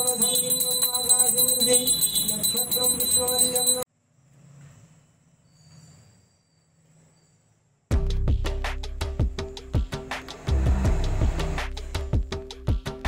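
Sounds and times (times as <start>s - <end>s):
bell rung rapidly: 0.0s - 3.9s
loud music with drum beats: 7.9s - 13.0s.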